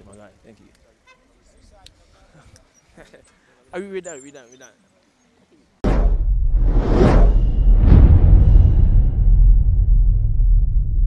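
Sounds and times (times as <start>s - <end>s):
deep bass rumble: 5.8s - 11.0s
impact hit: 5.8s - 11.0s
whoosh: 5.8s - 11.0s.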